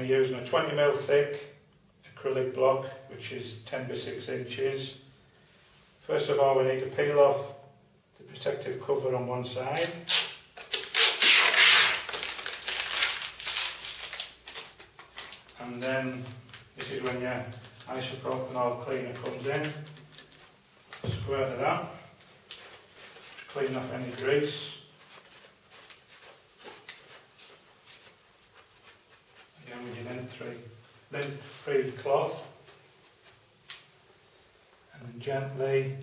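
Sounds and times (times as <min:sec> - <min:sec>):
plastic film ripping off: 0:09.8 - 0:15.6
plastic film crinkling: 0:09.8 - 0:21.1, 0:22.1 - 0:29.6
cloth rubbing on acrylic: 0:10.0 - 0:21.0, 0:21.7 - 0:34.9.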